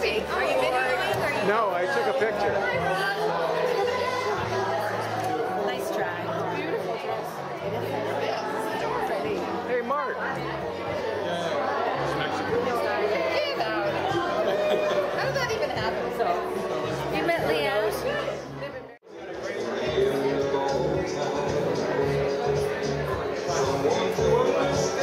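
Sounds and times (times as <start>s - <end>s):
background music: 0.0s - 25.0s
people chattering: 0.0s - 25.0s.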